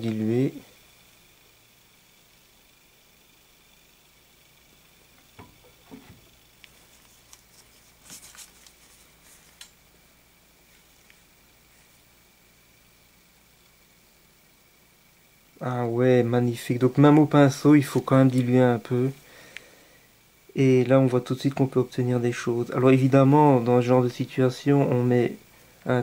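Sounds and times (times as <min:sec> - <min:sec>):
faint high hum: 0:00.0 - 0:26.0.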